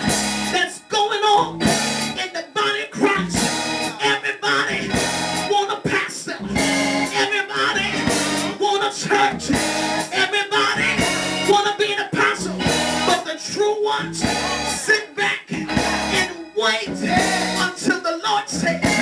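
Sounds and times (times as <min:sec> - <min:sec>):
church instrumental accompaniment: 0:00.0 - 0:19.0
person singing into microphone: 0:00.5 - 0:19.0.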